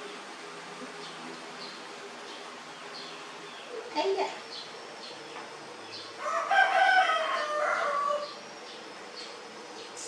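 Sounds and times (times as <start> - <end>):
crowing bird call: 6.0 - 8.5.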